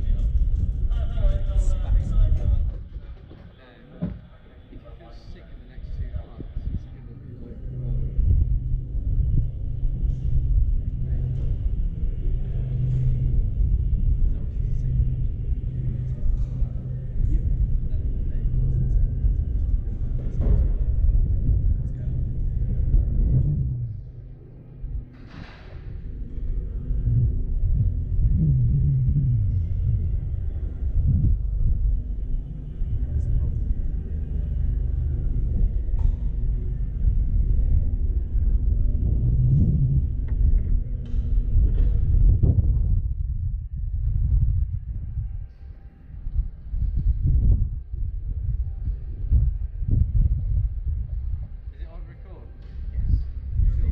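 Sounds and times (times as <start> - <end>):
muffled voices: 0.0 - 53.9
wind rumble on microphone: 0.0 - 53.9.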